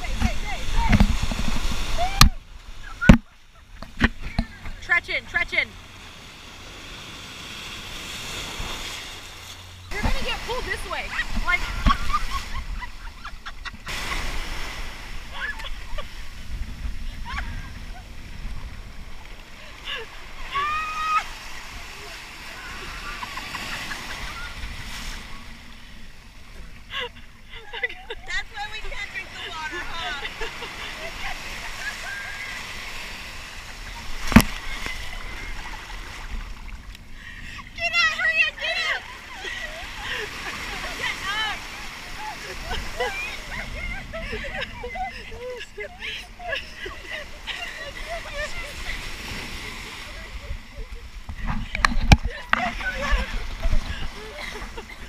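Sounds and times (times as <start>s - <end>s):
voices: 0.0s - 1.1s, 4.1s - 5.8s, 9.9s - 12.9s, 26.9s - 33.0s, 37.4s - 55.0s
people talking and laughing: 0.0s - 5.7s, 9.9s - 16.4s, 19.2s - 36.4s, 37.0s - 55.0s
ocean surf sloshing: 0.0s - 55.0s.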